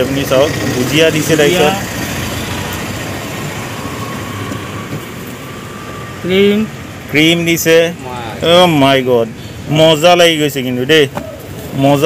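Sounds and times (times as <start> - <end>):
traffic rumbling: 0.0 - 12.0.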